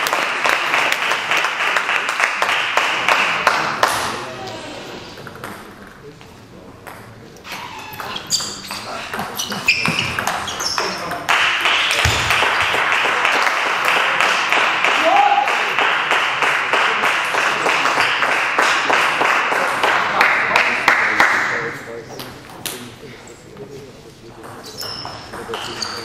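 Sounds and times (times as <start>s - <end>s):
people clapping: 0.0s - 4.6s, 10.9s - 22.9s
shoes squeaking on floor: 7.4s - 11.2s, 24.6s - 26.0s.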